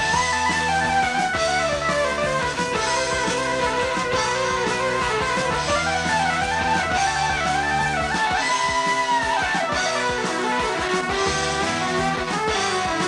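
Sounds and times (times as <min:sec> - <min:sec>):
lead line with bending notes: 0:00.0 - 0:13.0
rock band playing live: 0:00.0 - 0:13.0.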